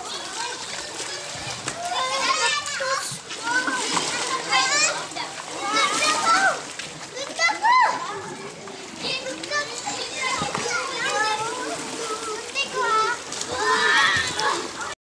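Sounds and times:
children shouting and squealing: 0.0s - 15.0s
water splashing: 0.0s - 15.0s.

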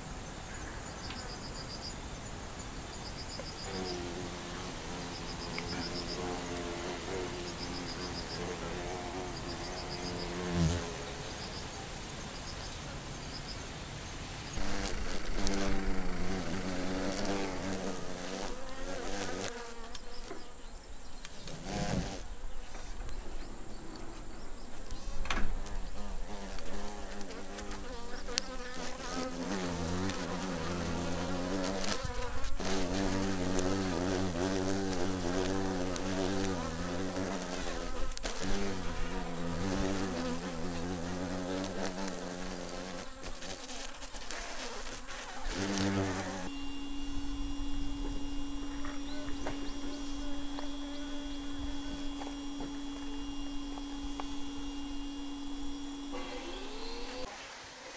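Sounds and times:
deep hornet buzz: 0.0s - 57.3s
honey bees buzzing: 0.0s - 57.4s.

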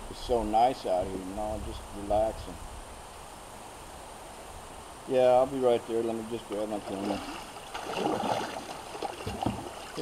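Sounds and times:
flowing river water: 2.8s - 10.0s
paddle strokes splashing: 6.8s - 10.0s.

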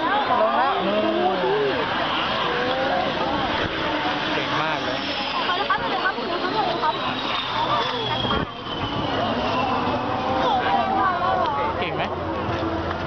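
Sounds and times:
crowd chatter: 0.0s - 13.0s
jet engine roaring: 0.0s - 13.0s.

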